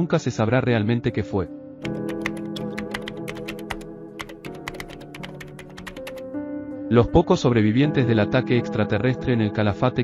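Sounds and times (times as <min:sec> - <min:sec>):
background music with held notes: 0:00.0 - 0:10.0
fast keyboard typing: 0:01.8 - 0:06.3.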